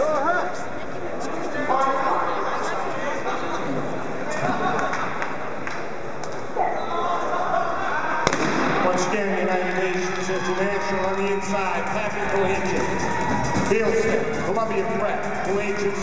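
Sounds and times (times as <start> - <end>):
crowd chatter: 0.0 - 16.0
music playing: 8.9 - 16.0.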